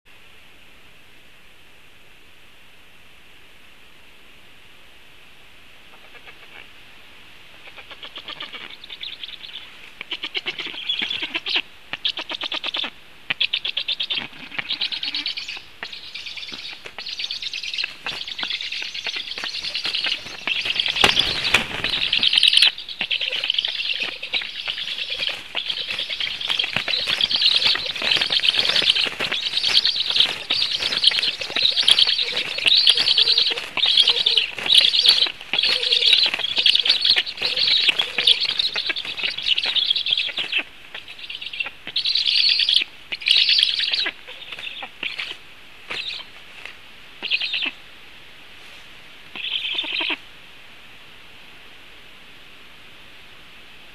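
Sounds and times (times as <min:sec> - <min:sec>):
nestlings begging calls: 0:07.6 - 0:46.4, 0:47.2 - 0:47.7, 0:49.4 - 0:50.2
wing flapping: 0:16.3 - 0:40.7.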